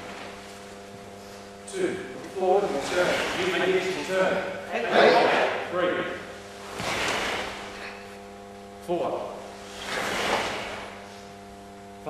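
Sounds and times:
electrical hum: 0:00.0 - 0:12.0
cloth swishing: 0:06.5 - 0:07.9, 0:09.5 - 0:11.4
feet shifting on floor: 0:06.5 - 0:08.3.

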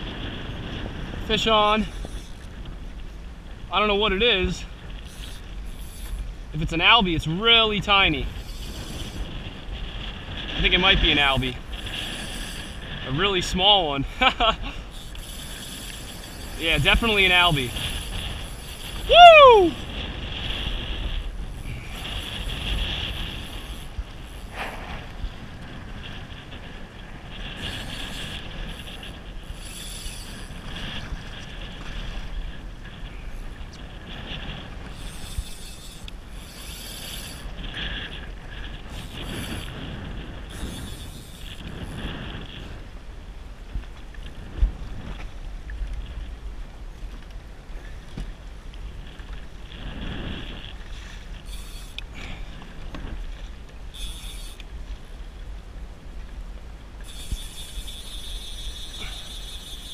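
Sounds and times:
wind blowing over microphone: 0:00.0 - 0:59.9.

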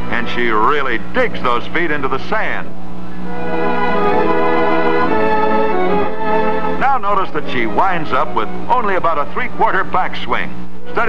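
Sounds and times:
organ-like chords: 0:00.0 - 0:11.0
narrator speaking: 0:06.8 - 0:11.0.

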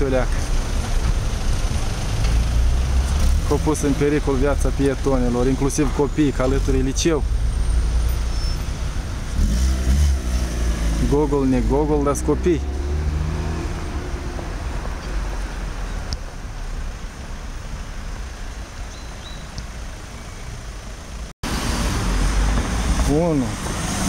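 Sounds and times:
city street traffic rumble: 0:00.0 - 0:24.0.

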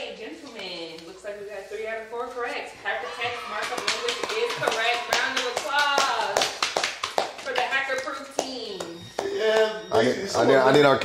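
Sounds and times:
voices: 0:00.0 - 0:11.0
people clapping: 0:02.8 - 0:10.5.

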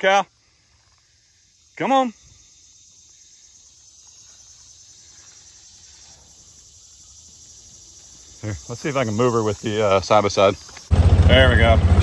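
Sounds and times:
chorus of field insects: 0:00.0 - 0:12.0.

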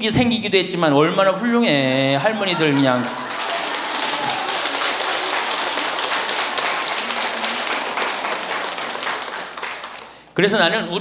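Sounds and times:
audience applauding: 0:02.4 - 0:10.3.

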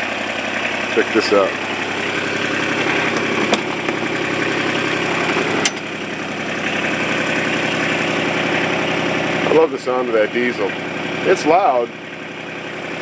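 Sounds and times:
diesel engine idling: 0:00.0 - 0:13.0.

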